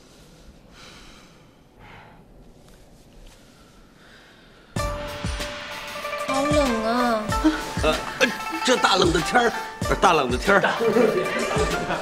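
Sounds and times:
person breathing out: 0.0 - 2.4.

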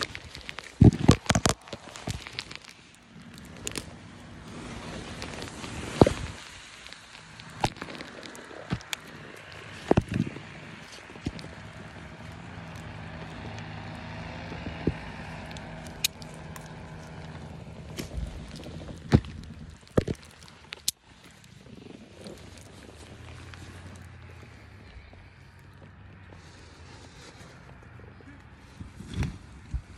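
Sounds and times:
gear handling knocks and clicks: 14.5 - 21.4.

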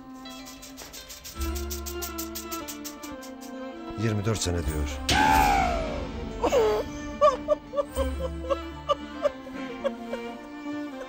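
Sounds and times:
soft sad background music: 1.2 - 11.0
woman wailing and sobbing: 5.5 - 11.0.

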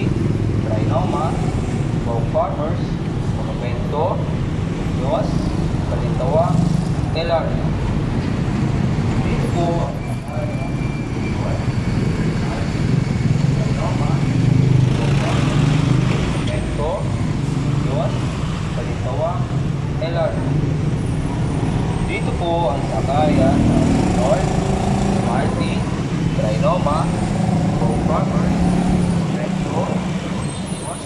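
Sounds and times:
traffic noise: 0.0 - 31.0.

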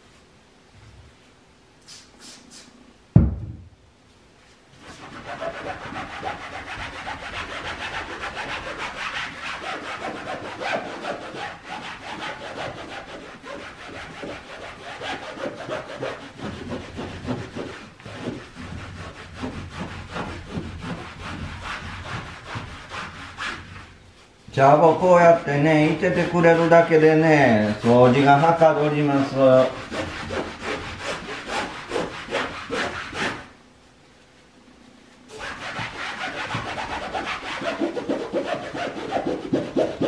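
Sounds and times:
pad scrubbing a wall: 4.8 - 33.6, 35.3 - 40.0.

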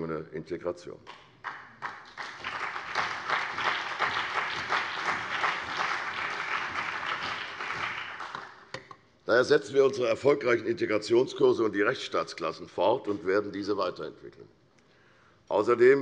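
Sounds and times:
crowd applauding: 1.4 - 8.7.

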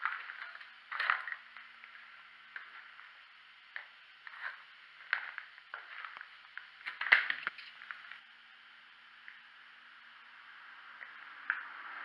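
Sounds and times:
footsteps crunching on rubble: 4.3 - 8.2.

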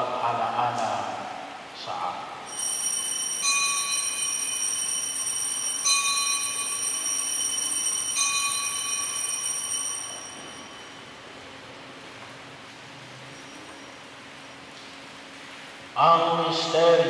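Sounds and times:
altar bell ringing: 2.5 - 11.3.

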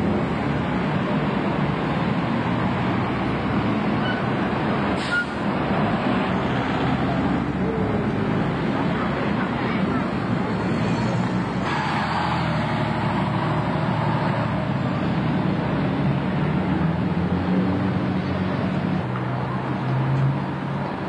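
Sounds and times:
bus diesel engine passing: 0.0 - 21.0
street traffic noise: 0.0 - 21.0.

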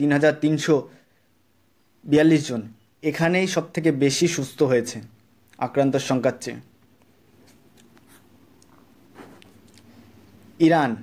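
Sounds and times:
faint hum and hiss: 0.0 - 11.0.

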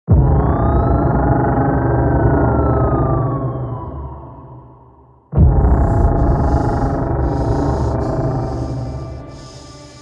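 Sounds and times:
loud synthesizer drone: 0.1 - 10.0.

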